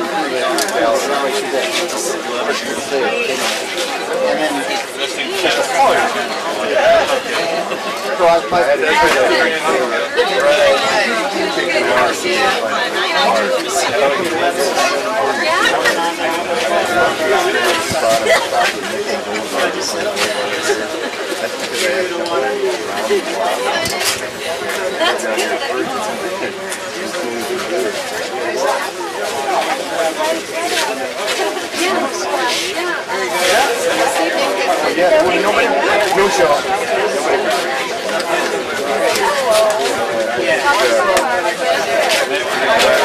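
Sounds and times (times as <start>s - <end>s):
people chatting: 0.0s - 43.0s
people talking at once: 0.0s - 43.0s.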